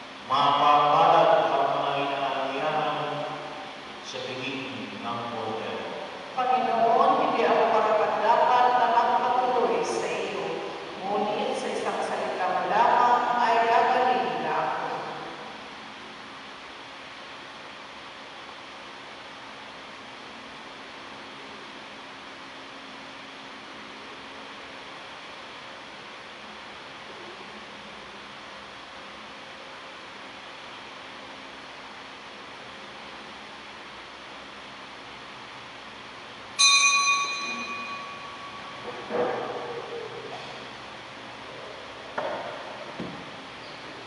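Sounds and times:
altar bell ringing: 0:36.6 - 0:39.6.

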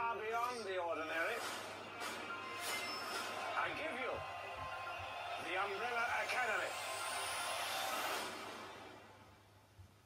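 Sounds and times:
film trailer soundtrack: 0:01.0 - 0:09.5.

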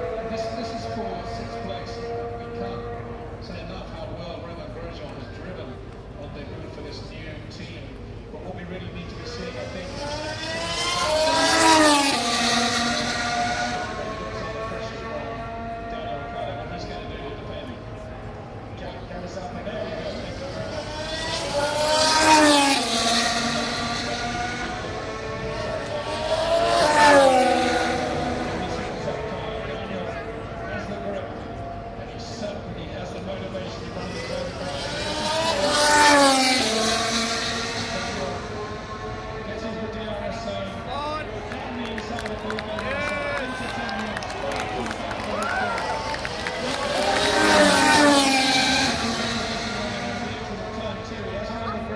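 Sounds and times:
racing car engine passing by: 0:08.4 - 0:51.9.

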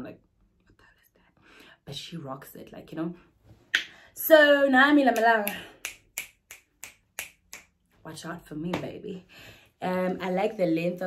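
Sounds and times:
fingers snapping: 0:05.2 - 0:07.8.

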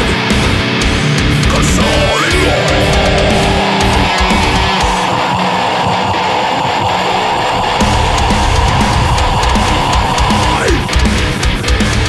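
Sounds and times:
heavy metal electric guitar riff: 0:00.0 - 0:12.0.

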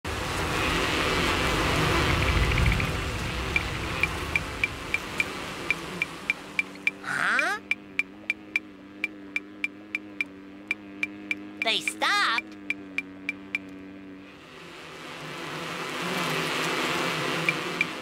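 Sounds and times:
low hum: 0:00.1 - 0:15.2
dense cartoon buzzing: 0:00.1 - 0:18.0
light ticking: 0:03.5 - 0:07.0, 0:07.6 - 0:11.7.

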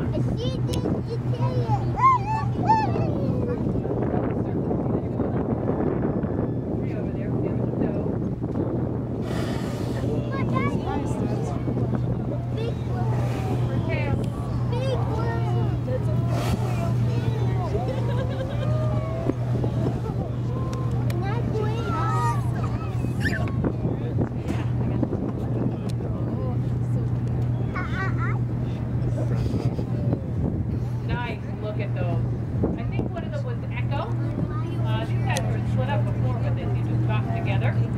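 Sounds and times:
people talking: 0:00.0 - 0:05.7, 0:06.8 - 0:08.2, 0:09.8 - 0:28.4, 0:31.0 - 0:37.9
boat engine humming: 0:00.0 - 0:37.9
people chattering: 0:08.8 - 0:37.9.

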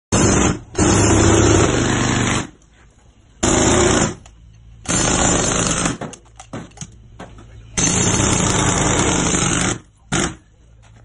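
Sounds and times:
jackhammer breaking concrete: 0:00.1 - 0:02.5, 0:03.4 - 0:04.2, 0:04.9 - 0:06.1, 0:07.8 - 0:10.4.

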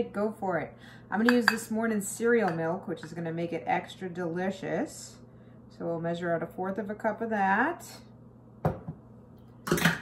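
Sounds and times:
kitchenware knocking against dish: 0:08.6 - 0:09.0.

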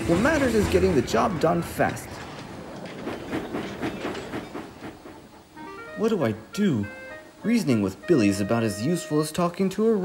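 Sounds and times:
train wheels clicking on track: 0:00.0 - 0:05.7
soft music notes: 0:05.6 - 0:10.0.

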